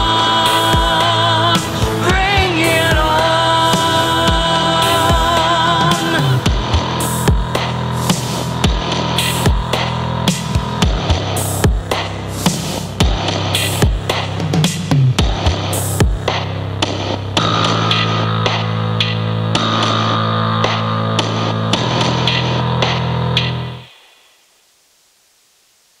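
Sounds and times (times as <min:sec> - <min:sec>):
drum hits: 0:00.0 - 0:03.2, 0:03.8 - 0:16.5
alt-rock band playing: 0:00.0 - 0:11.6.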